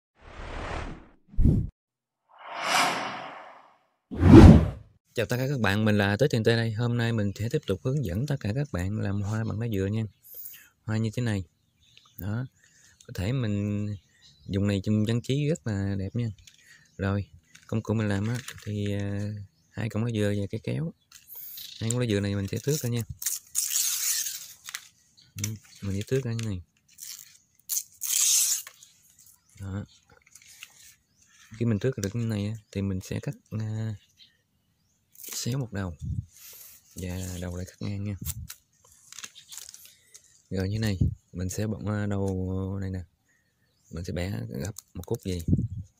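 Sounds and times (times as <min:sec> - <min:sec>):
whoosh: 0:00.2 - 0:01.7, 0:02.4 - 0:04.8
leaf being torn: 0:23.2 - 0:25.5, 0:26.9 - 0:28.8, 0:35.2 - 0:35.4, 0:38.2 - 0:40.0.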